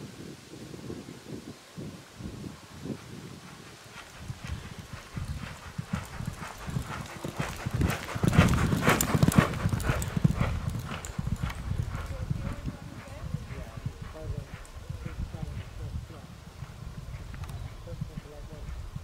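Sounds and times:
horse hoofbeats cantering: 3.4s - 19.0s.

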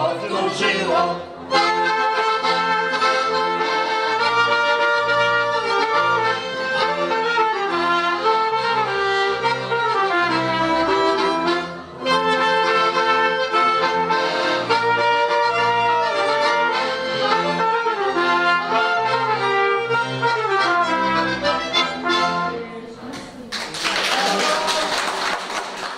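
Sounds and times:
double bass: 0.0s - 22.8s
fiddle: 0.0s - 22.9s.

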